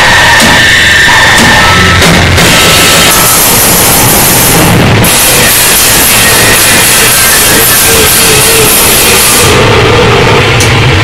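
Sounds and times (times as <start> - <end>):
harsh distorted noise music: 0.0 - 11.0.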